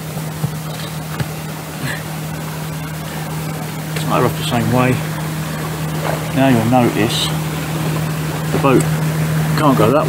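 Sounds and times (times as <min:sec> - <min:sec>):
low motor hum: 0:00.0 - 0:10.0.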